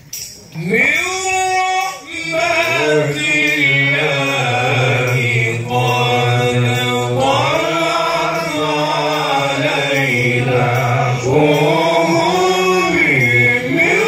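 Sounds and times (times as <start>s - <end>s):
man singing melodic phrases: 0.6s - 14.0s
men chanting through microphones: 0.6s - 14.0s.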